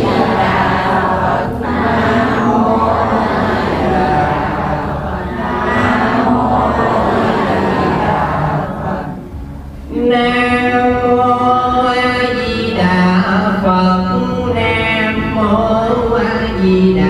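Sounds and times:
crowd chanting prayers: 0.0 - 17.0.

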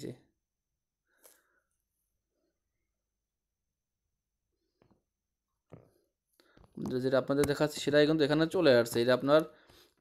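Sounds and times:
man speaking: 6.8 - 9.5.

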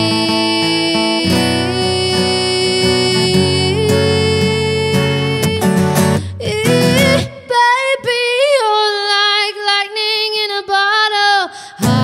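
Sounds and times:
acoustic guitar strumming: 0.0 - 8.2, 11.8 - 12.0
woman singing: 0.0 - 12.0.

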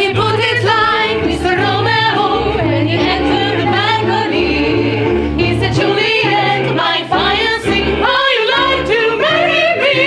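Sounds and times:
group singing in close harmony: 0.0 - 10.0.

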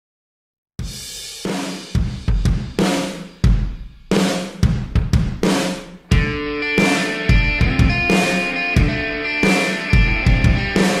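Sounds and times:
rock drum kit: 0.8 - 11.0.

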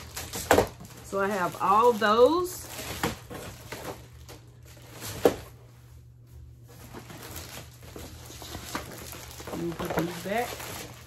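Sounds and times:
paper rustling: 0.0 - 5.7, 6.4 - 11.0
low steady hum: 0.0 - 11.0.

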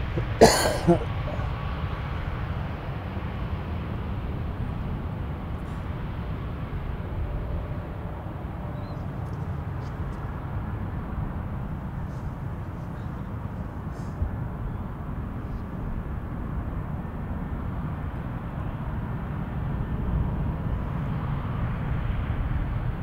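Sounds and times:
distant jet engines rumbling: 0.0 - 23.0.

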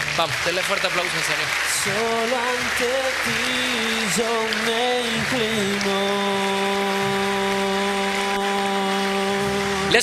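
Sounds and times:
congregation applauding: 0.0 - 10.0.

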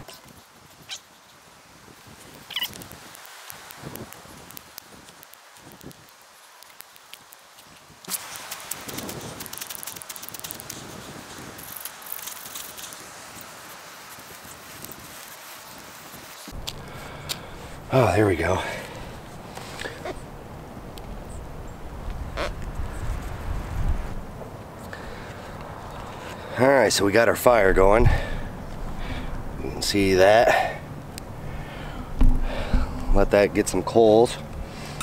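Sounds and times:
hissing with sharp crackles: 0.3 - 17.9.

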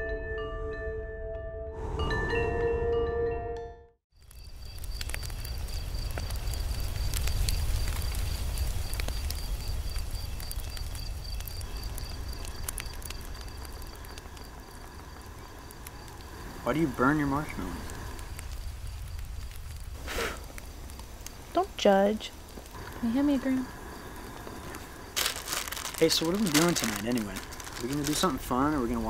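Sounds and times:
fire crackling and popping: 4.1 - 29.0
insect chirping: 4.1 - 29.0.

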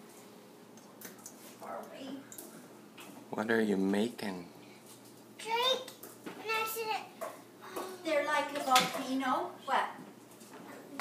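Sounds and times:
child's high-pitched voice: 5.4 - 9.2.

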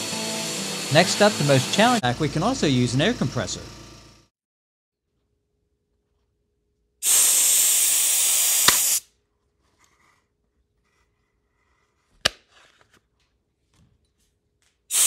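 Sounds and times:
compressed air hissing: 0.0 - 2.8, 7.0 - 9.0.

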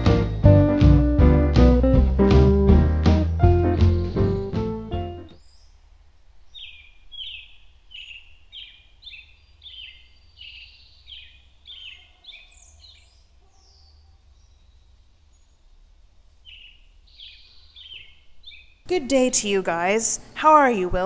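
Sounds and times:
songbird singing: 3.6 - 21.0.

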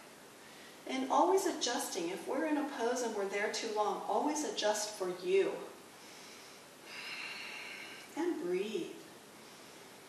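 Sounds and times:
person breathing out: 6.0 - 8.1.

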